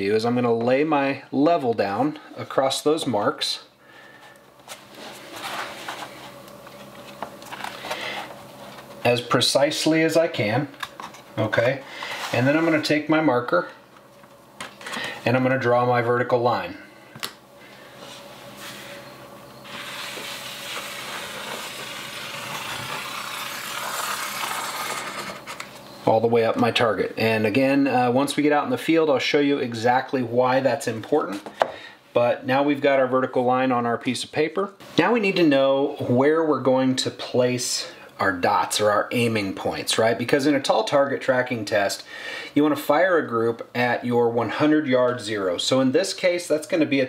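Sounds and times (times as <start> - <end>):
spirit level sliding on paper: 11.9 - 12.9, 17.9 - 25.6
paper rustling: 19.7 - 25.7.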